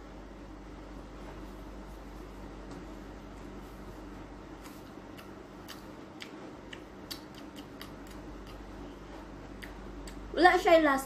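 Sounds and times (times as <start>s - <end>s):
low steady hum: 0.0s - 11.0s
crisp chewing clicks: 4.6s - 8.7s.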